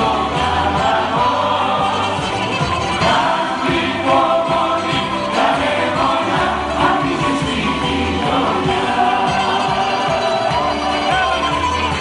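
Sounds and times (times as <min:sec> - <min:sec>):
group of people singing: 0:00.0 - 0:11.6
band playing: 0:00.0 - 0:12.0.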